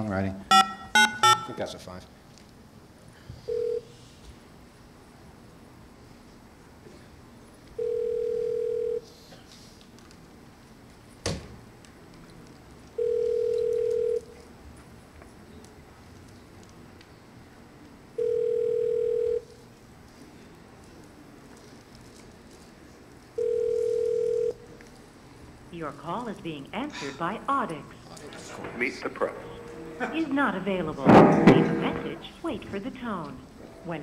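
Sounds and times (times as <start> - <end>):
telephone ringback beeps: 0.5 - 1.6, 18.2 - 19.4, 23.4 - 24.6.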